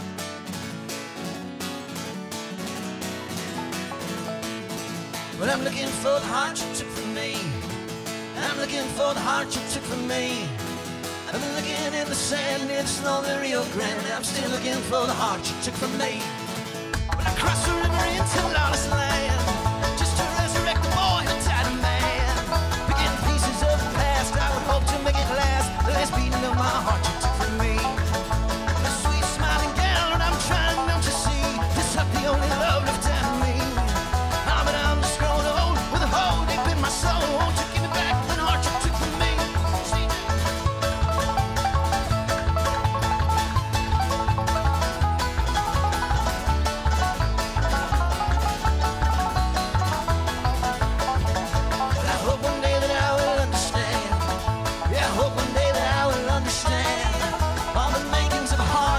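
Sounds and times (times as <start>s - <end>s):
bluegrass band instrumental: 0.0s - 58.9s
mandolin: 0.0s - 58.9s
picked banjo: 0.0s - 58.9s
strummed acoustic guitar: 0.0s - 58.9s
upright bass: 2.7s - 58.9s.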